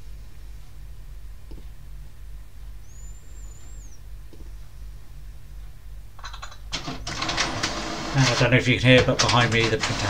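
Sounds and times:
inkjet printer whirring: 6.8s - 10.0s.

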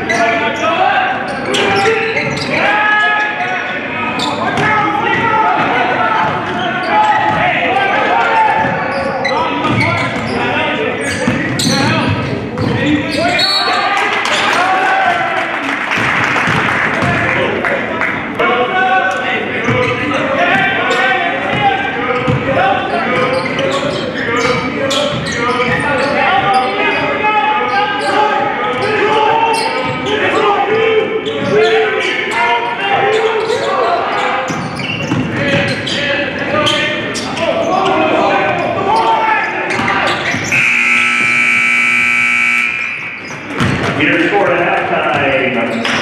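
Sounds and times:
people calling out: 18.4s - 43.4s
gym buzzer blast: 40.5s - 43.0s
basketball bouncing on wooden floor: 43.4s - 44.0s.

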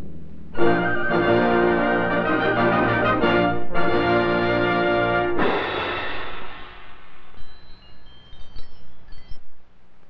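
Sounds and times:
faint low hum: 0.0s - 5.4s, 6.2s - 10.0s
big chord: 0.6s - 7.7s
tinkling chime-like notes: 7.1s - 9.5s.

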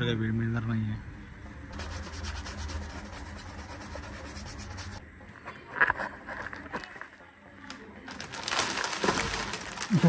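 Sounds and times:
rubbing strokes on a sneaker: 1.8s - 5.0s.

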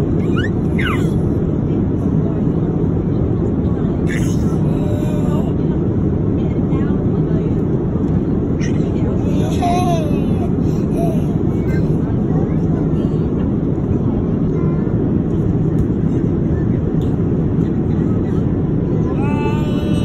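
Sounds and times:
jet engine cabin rumble: 0.0s - 20.0s
small child's voice: 4.1s - 5.7s, 8.6s - 13.3s, 14.4s - 15.0s, 18.9s - 20.0s.

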